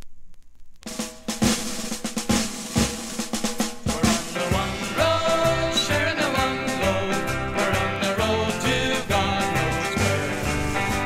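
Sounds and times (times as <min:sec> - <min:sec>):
faint hiss and clicks: 0:00.0 - 0:03.8
snare drum rolls: 0:00.9 - 0:11.0
band playing bass and guitar: 0:03.8 - 0:11.0.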